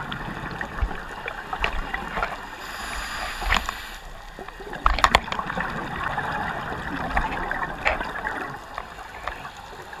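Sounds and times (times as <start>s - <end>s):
diver breathing through regulator: 2.6s - 4.1s.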